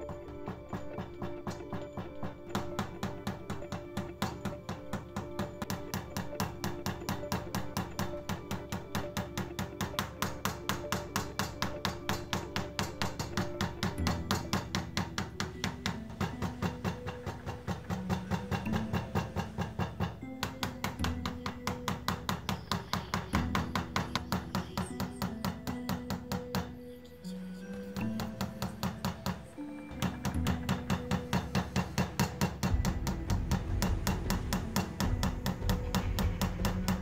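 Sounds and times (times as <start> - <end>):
mallet tapping metal stamping tool: 0.0 - 26.8, 27.9 - 37.0
background music: 0.0 - 37.0.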